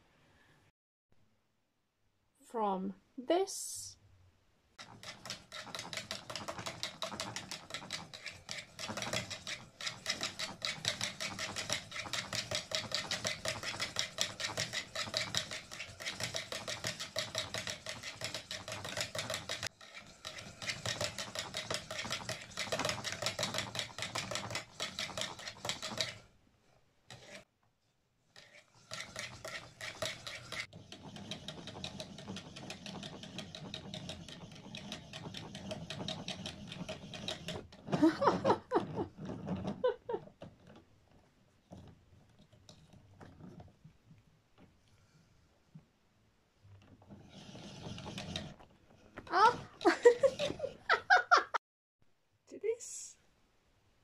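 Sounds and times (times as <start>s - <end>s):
yarn winder gears clicking: 4.8s - 26.3s, 28.4s - 40.8s, 46.8s - 48.6s.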